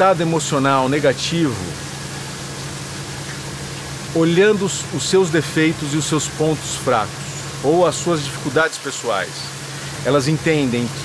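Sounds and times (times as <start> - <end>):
even hiss: 0.0 - 11.0
low constant hum: 0.0 - 11.0.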